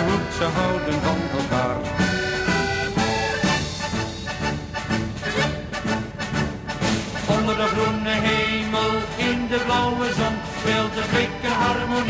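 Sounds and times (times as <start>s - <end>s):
band playing lively melody: 0.0s - 12.0s.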